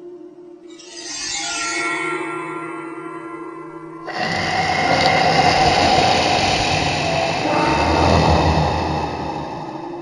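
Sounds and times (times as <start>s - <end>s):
dense noise with held tone: 4.1s - 10.0s.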